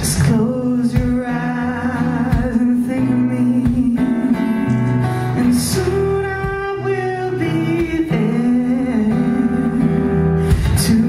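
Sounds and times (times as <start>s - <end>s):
acoustic guitar strums: 0.0s - 11.0s.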